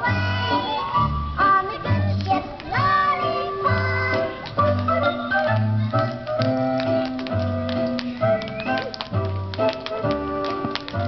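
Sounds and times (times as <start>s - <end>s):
music playing: 0.0s - 11.0s
tap shoes clicking on stage: 1.9s - 11.0s.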